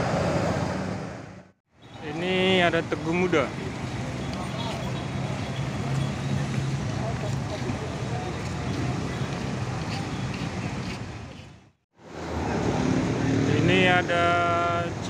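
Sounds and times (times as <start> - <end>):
street traffic noise: 0.0 - 15.0.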